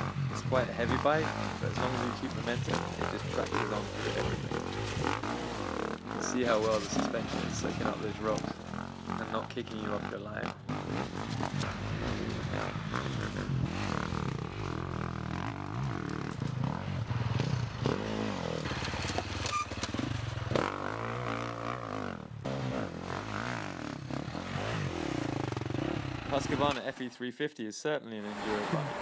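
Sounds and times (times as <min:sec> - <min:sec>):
dirt bike engine revving: 0:00.0 - 0:26.8, 0:28.2 - 0:29.0.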